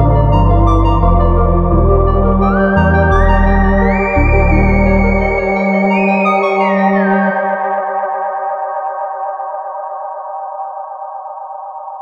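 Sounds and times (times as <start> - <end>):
low bass note: 0.0 - 6.0
synthesizer sustained tone with delay: 0.0 - 12.0.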